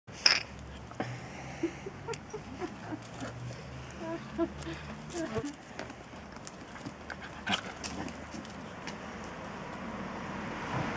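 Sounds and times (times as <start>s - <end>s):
puppies scuffling on concrete: 2.7s - 9.8s.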